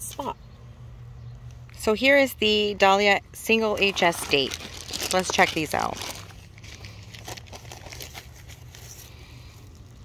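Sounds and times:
plastic bag crinkling: 3.7s - 10.0s.

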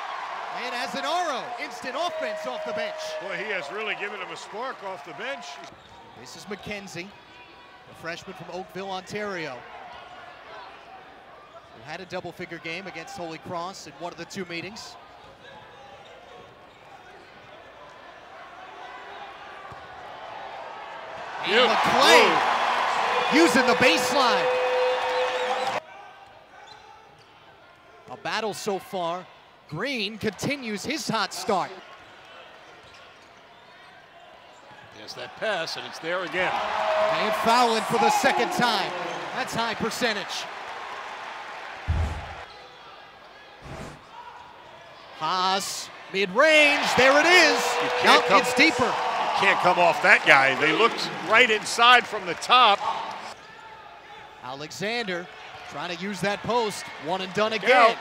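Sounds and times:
deep thud: 41.9s - 42.5s
arena crowd murmur: 46.4s - 53.4s.

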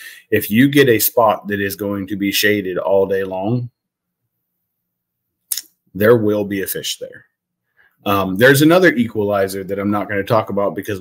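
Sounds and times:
man speaking: 0.0s - 3.8s, 5.5s - 7.4s, 8.0s - 11.0s.

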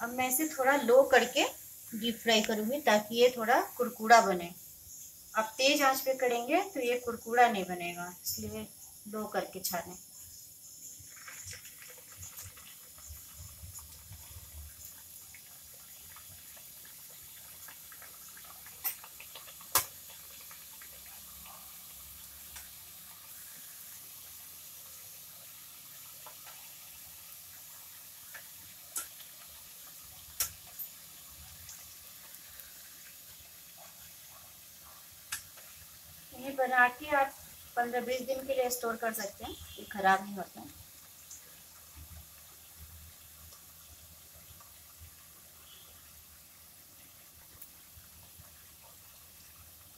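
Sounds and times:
dough sizzling in oil: 0.0s - 49.9s.

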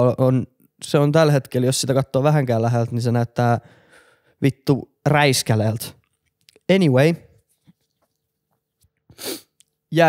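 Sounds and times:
short sharp breath: 9.1s - 9.6s.

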